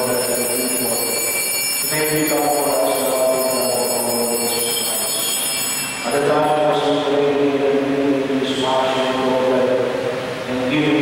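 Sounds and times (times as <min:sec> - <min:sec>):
liturgical chanting: 0:00.0 - 0:05.4
faint high-pitched whine: 0:00.0 - 0:11.0.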